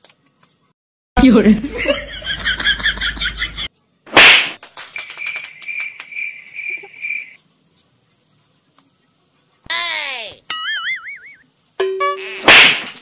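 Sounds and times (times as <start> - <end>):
loud slap: 4.1 - 6.0, 12.4 - 13.0.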